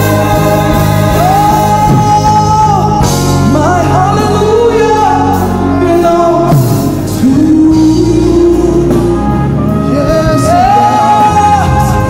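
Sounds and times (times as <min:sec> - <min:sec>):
keyboard chords: 0:00.0 - 0:12.0
lead voice singing: 0:00.0 - 0:12.0
steady bass: 0:00.0 - 0:12.0.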